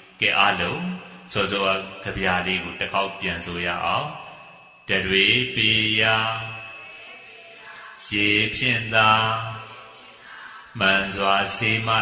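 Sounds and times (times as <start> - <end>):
man chanting: 0.0 - 6.8, 8.0 - 9.8, 10.8 - 12.0.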